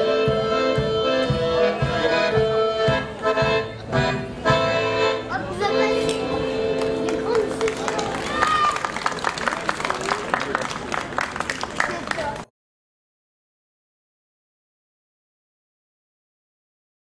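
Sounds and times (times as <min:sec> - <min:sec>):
steady low beat: 0:00.0 - 0:05.0
accordion folk dance tune: 0:00.0 - 0:08.6
people clapping: 0:06.1 - 0:12.5.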